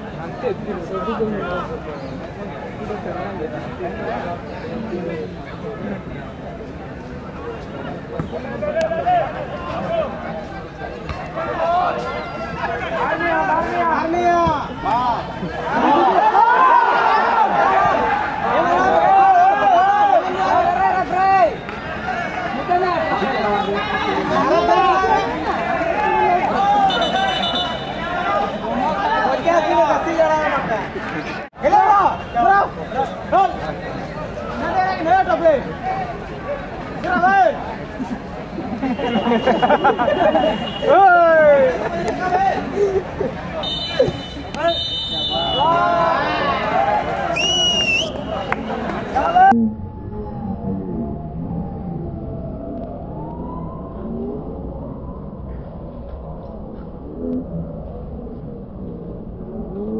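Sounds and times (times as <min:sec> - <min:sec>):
men talking and chattering: 0:00.0 - 0:49.6
referee's whistle blast: 0:43.6 - 0:45.7
thin whistle tones: 0:47.3 - 0:48.5.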